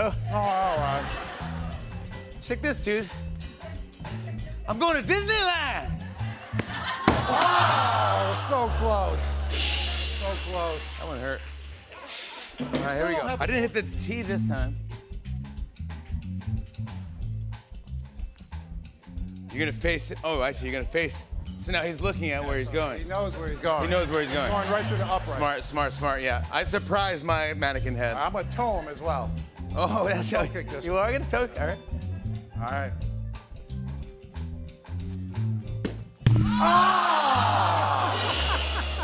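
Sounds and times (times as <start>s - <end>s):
bass guitar line: 0.0s - 11.8s, 12.8s - 20.2s, 21.3s - 39.0s
band playing instrumental groove: 0.0s - 15.1s, 35.8s - 39.0s
drum kit: 0.0s - 31.8s, 32.6s - 39.0s
drum hits: 6.5s - 13.6s, 35.8s - 36.9s, 37.9s - 39.0s
electric bass notes: 7.5s - 11.8s, 12.9s - 20.2s.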